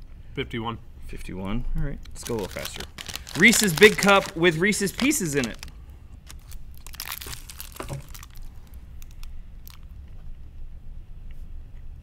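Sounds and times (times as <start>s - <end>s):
candy wrapper crinkling and tearing: 2.0s - 9.9s.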